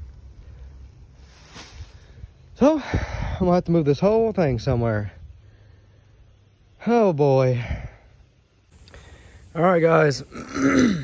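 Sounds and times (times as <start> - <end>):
faint rustle: 0.0 - 3.3.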